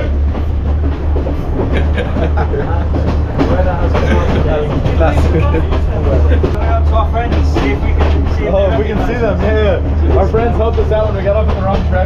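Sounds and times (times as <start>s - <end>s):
passengers talking: 0.0s - 12.0s
train rumbling on track: 0.0s - 12.0s.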